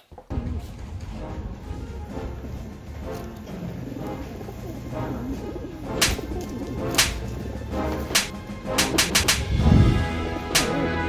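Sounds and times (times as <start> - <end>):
background music: 0.0 - 11.0
wings flapping: 1.8 - 9.7, 10.4 - 11.0
pigeons cooing: 2.5 - 8.3
sharp claps: 6.0 - 7.4, 8.1 - 9.6, 10.5 - 10.9.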